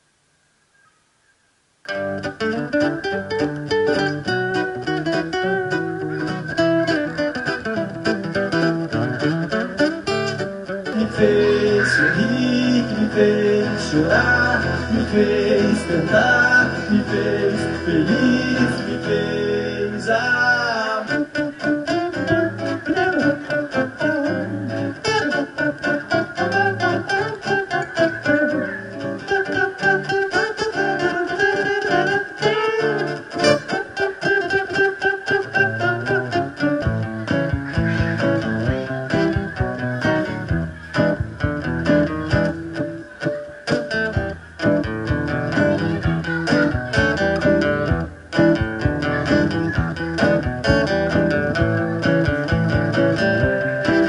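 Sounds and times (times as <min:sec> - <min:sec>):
acoustic guitar strumming: 0:01.8 - 0:54.0.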